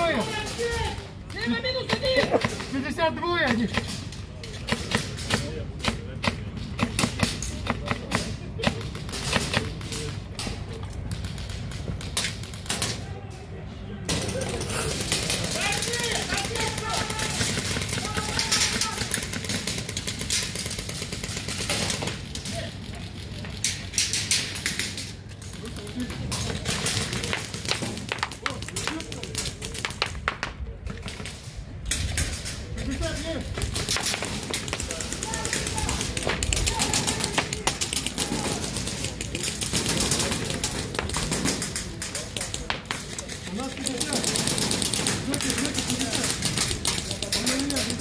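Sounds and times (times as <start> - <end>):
players calling out: 12.8 - 23.5, 32.8 - 48.0
airsoft guns firing: 14.1 - 22.4, 33.1 - 48.0.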